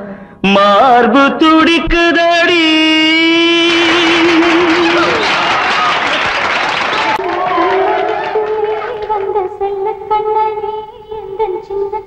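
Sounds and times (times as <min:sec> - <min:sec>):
audience applause: 0:03.5 - 0:09.5.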